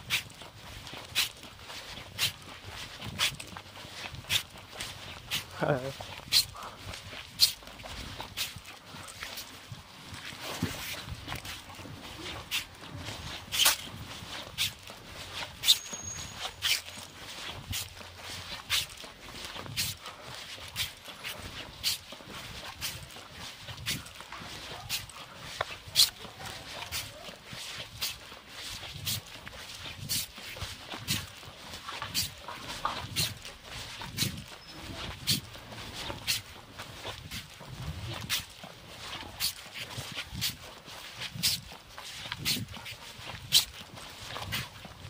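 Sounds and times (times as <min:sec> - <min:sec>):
footsteps on pavement: 0:00.0 - 0:45.0.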